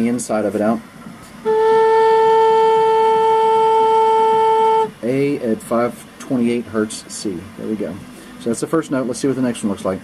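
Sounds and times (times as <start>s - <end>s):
flute holding a low note: 1.4s - 5.1s.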